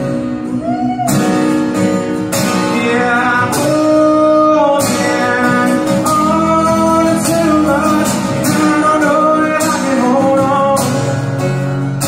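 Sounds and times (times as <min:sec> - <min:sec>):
acoustic guitar strumming: 0:00.0 - 0:12.0
man singing country song: 0:02.2 - 0:12.0.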